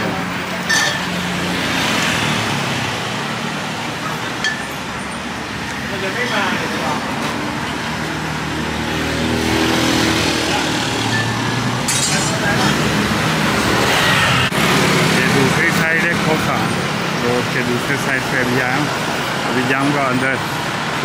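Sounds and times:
car engines passing: 0.0s - 21.0s
motorbike engines passing: 0.0s - 21.0s
people talking: 5.9s - 7.3s, 11.9s - 13.0s, 15.1s - 18.9s, 19.5s - 20.4s.

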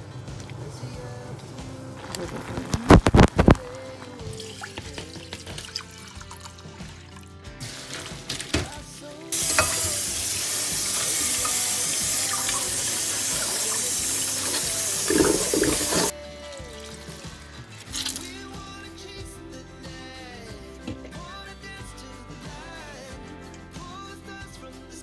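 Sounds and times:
soft background music: 0.0s - 25.0s
water rushing into a steel sink: 9.4s - 17.3s.

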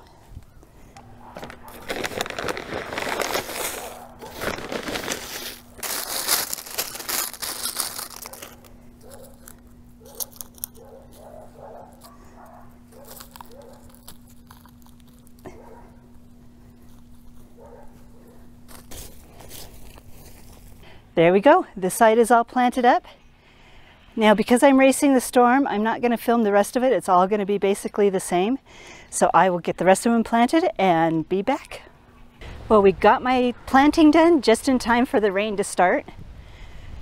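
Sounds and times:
faint steady hum: 0.0s - 37.0s
plastic bag rustling: 1.3s - 20.9s
mulch and soil scraping: 1.4s - 20.8s.

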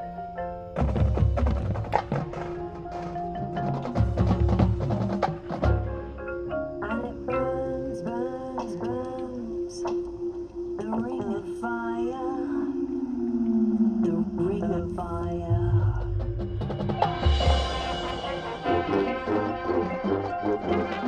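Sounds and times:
marching band music: 0.7s - 7.0s, 16.0s - 21.0s.

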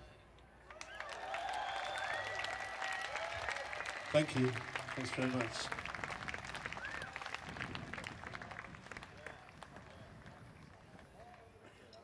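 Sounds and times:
audience applause: 0.7s - 10.9s.

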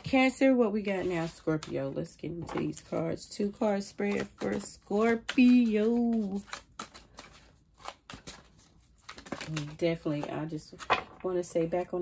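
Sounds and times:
cards shuffling: 0.9s - 12.0s.

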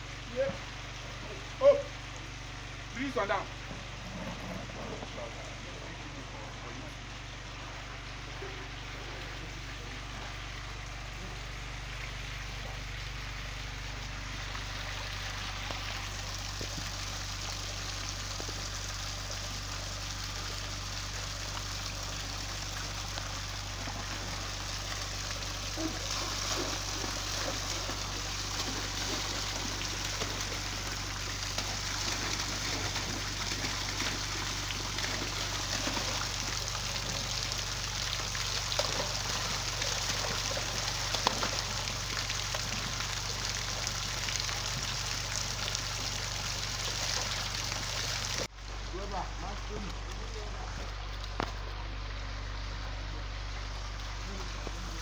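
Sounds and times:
water spraying onto pond: 0.0s - 4.0s, 5.0s - 55.0s.

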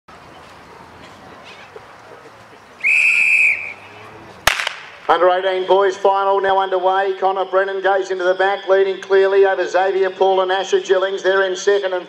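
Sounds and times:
high whistle blast: 2.8s - 3.9s.

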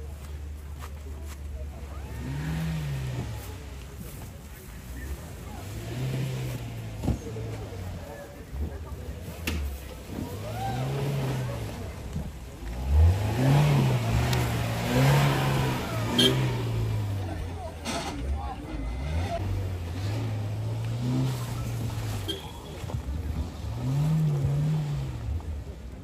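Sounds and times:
car engine revving: 1.6s - 26.0s.

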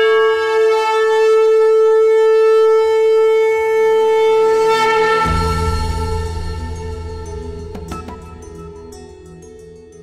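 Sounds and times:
conch shell blown: 0.0s - 8.9s.

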